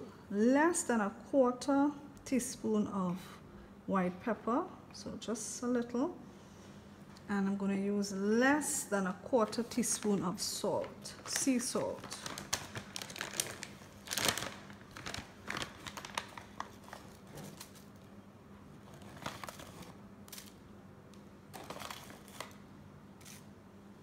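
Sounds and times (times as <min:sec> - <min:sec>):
plastic pouch crinkling: 0:09.8 - 0:17.9, 0:18.9 - 0:20.6.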